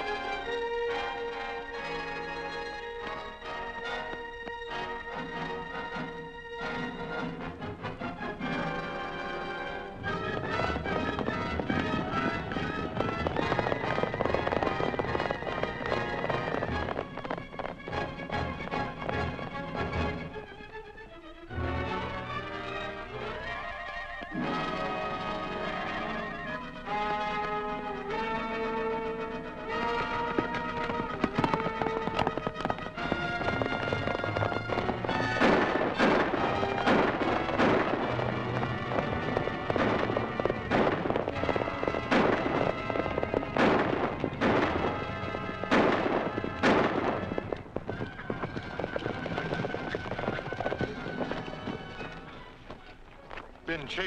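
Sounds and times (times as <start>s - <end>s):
dramatic orchestral music: 0.0s - 53.0s
gunshots: 10.1s - 20.1s, 29.6s - 52.4s.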